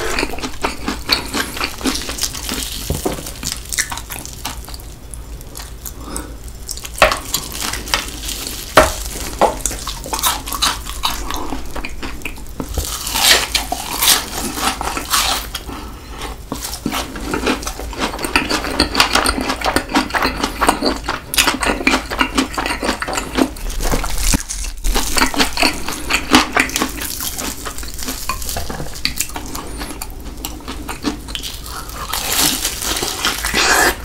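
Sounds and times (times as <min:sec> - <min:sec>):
crunchy chewing: 0:00.0 - 0:34.0.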